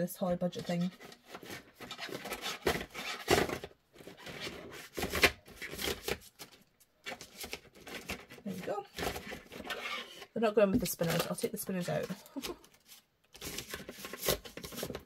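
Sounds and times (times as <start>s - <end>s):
paper rustling and scraping: 0.5s - 10.3s, 11.0s - 15.0s.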